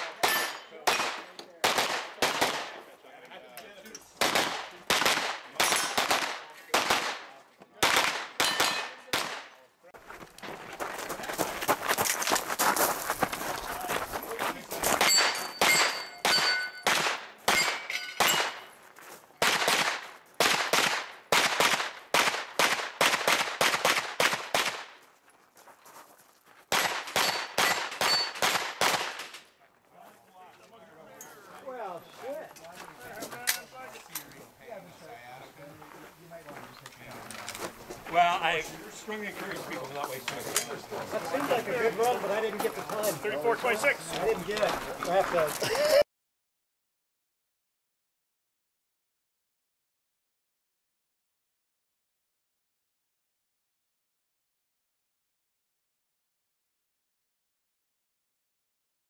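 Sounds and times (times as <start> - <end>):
carbine gunshots: 0.0 - 2.8, 4.2 - 9.5, 15.0 - 18.7, 19.4 - 24.9, 26.7 - 29.3
metallic ring from steel targets: 0.2 - 0.8, 8.4 - 9.0, 15.0 - 16.9, 17.5 - 18.7, 27.2 - 28.4.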